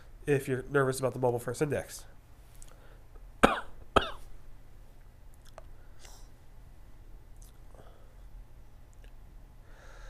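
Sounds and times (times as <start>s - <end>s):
man coughing: 3.4s - 4.3s.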